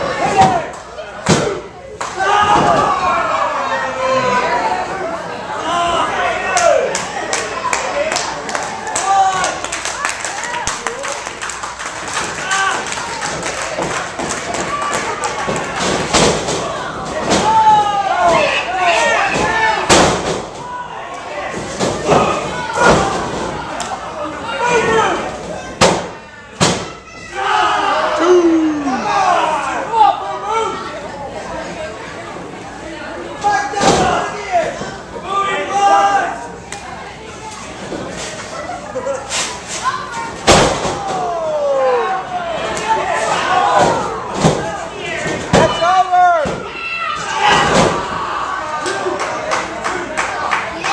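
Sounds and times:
people's voices: 0:20.6 - 0:50.9
shouting voices: 0:26.9 - 0:31.0.

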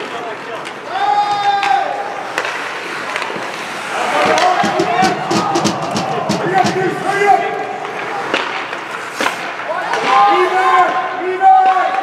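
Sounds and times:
hockey sticks and puck clacking: 0:00.0 - 0:12.0
voices shouting: 0:03.8 - 0:07.8.

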